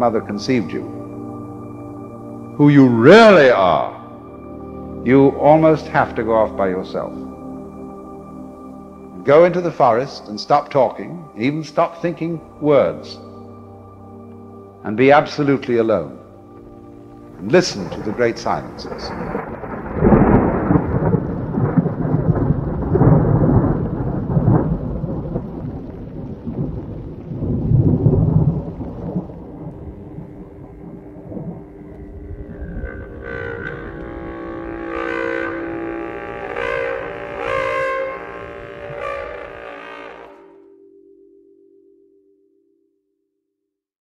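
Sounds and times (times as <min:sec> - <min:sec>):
chiming notes: 0:00.0 - 0:19.5
low drone: 0:00.0 - 0:24.8, 0:27.4 - 0:42.3
low rolling rumbles: 0:17.3 - 0:40.3.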